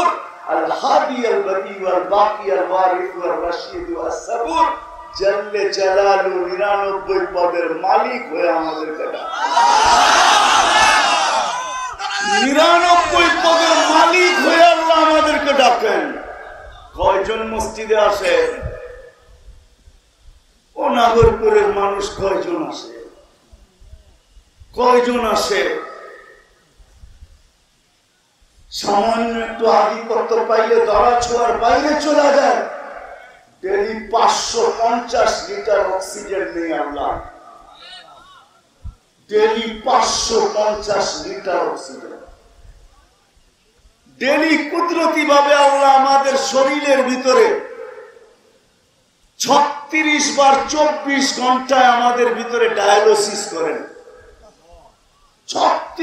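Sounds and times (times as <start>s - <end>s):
man speaking over public address: 0.0s - 9.3s, 12.0s - 19.2s, 20.8s - 23.3s, 24.8s - 26.2s, 28.7s - 38.4s, 39.3s - 42.4s, 44.1s - 48.1s, 49.4s - 54.9s, 55.5s - 56.0s.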